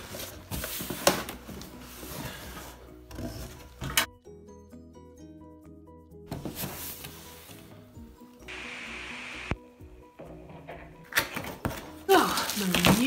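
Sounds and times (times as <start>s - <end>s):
background music: 0.0s - 13.0s
plastic bag crinkling: 12.2s - 13.0s.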